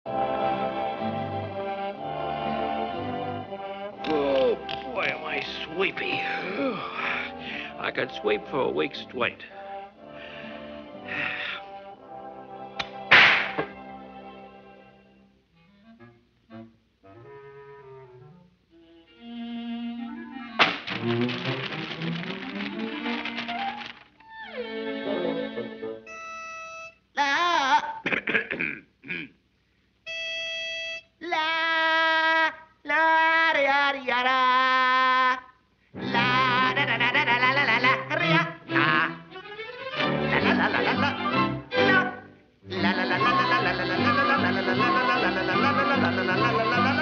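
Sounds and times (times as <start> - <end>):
orchestral brass chords: 0.1 - 4.7, 9.4 - 14.9
busy orchestral music: 0.1 - 13.1, 19.2 - 26.1, 38.2 - 42.4
loud orchestral hit: 13.1 - 13.8.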